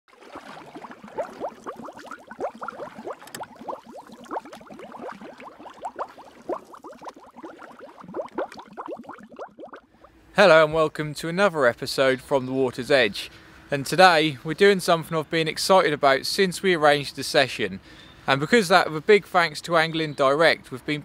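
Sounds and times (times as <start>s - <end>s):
water bubbling: 0.1s - 10.2s.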